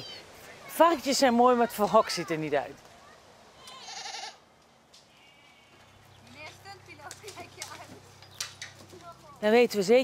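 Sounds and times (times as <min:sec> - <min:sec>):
sheep bleating: 0:03.6 - 0:04.4.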